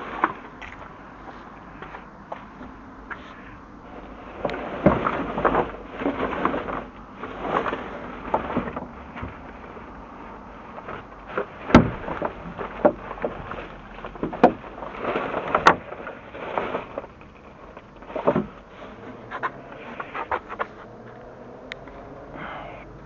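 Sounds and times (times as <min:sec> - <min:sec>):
rustling of rubbish bags: 0:00.0 - 0:23.0
sharp knocks in dumpster: 0:11.6 - 0:13.0.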